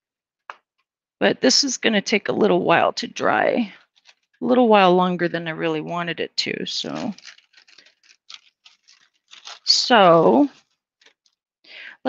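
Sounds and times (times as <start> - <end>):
person speaking: 1.2 - 3.8, 4.4 - 10.6.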